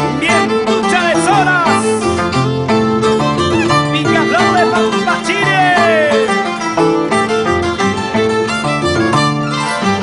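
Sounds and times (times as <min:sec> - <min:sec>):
bowed fiddle melody: 0:00.0 - 0:10.0
plucked harp notes: 0:00.0 - 0:10.0.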